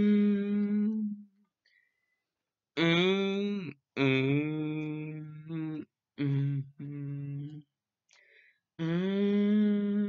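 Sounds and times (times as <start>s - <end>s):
man humming a held note: 0.0s - 1.3s, 2.8s - 7.6s, 8.8s - 10.0s.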